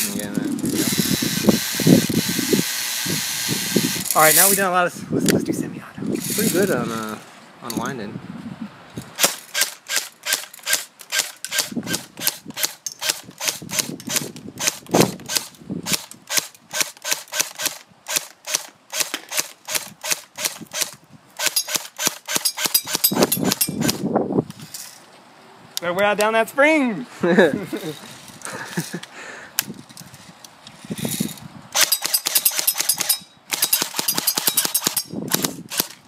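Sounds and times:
airsoft rifle shots: 0:09.2 - 0:24.0, 0:31.8 - 0:36.0.

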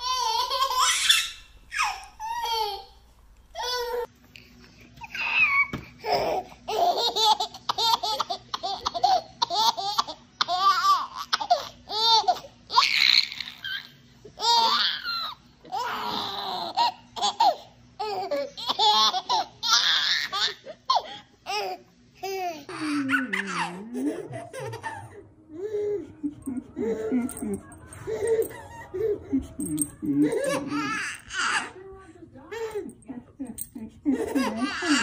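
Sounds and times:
baby laughing: 0:00.0 - 0:03.0, 0:05.0 - 0:31.8, 0:33.6 - 0:35.0.

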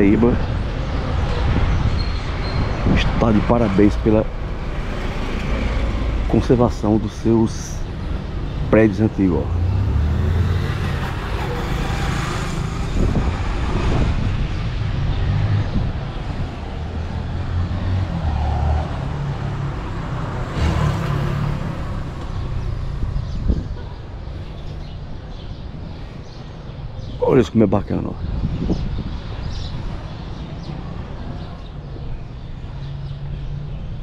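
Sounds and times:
street rumble: 0:00.0 - 0:34.0.

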